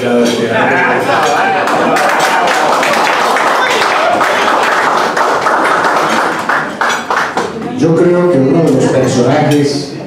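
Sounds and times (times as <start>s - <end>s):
audience applauding: 1.4s - 7.6s.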